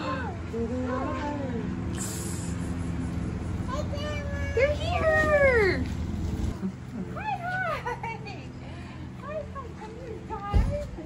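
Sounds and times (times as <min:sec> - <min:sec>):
vehicle engine running: 0:00.0 - 0:11.0
children calling out excitedly: 0:03.6 - 0:05.9.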